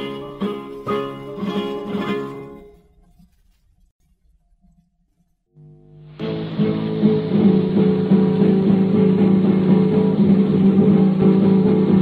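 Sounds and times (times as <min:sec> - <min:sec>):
muffled flamenco guitar record: 0:00.0 - 0:12.0.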